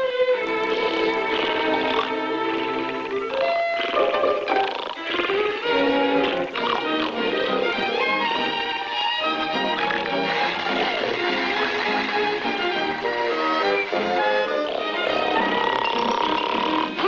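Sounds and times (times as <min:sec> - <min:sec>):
orchestral cartoon music with strings: 0:00.0 - 0:17.0.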